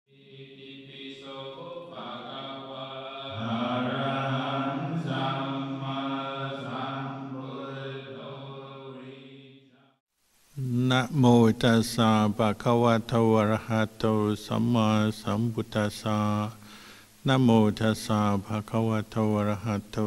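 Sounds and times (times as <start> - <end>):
voices chanting long notes: 1.0 - 9.2.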